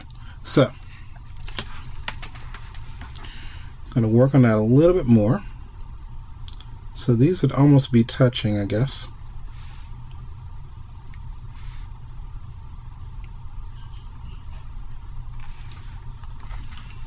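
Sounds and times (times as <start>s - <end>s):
low background hum: 0.0s - 17.0s
soft hisses: 9.4s - 10.2s, 11.5s - 12.0s.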